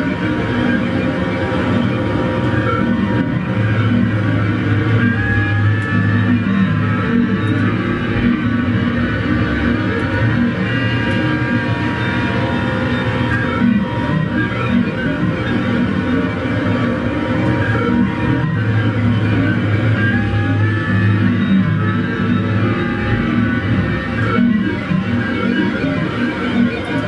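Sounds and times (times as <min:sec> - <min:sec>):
distorted bass with effects: 0:00.0 - 0:27.0
electric guitar: 0:00.0 - 0:27.0.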